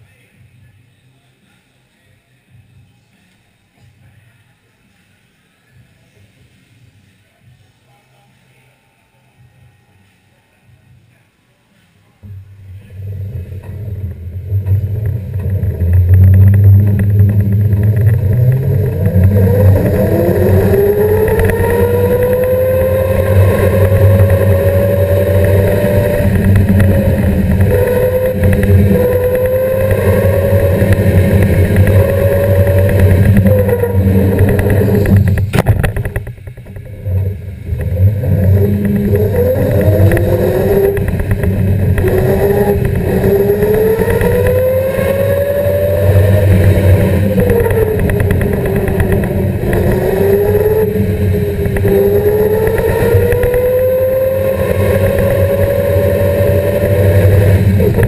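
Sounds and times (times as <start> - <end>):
electric motor whine: 12.2 - 58.0
loud low rumble: 12.2 - 58.0.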